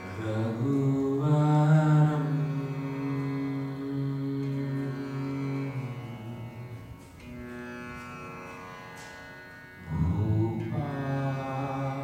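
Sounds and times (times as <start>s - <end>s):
low voice chanting: 9.8s - 12.0s.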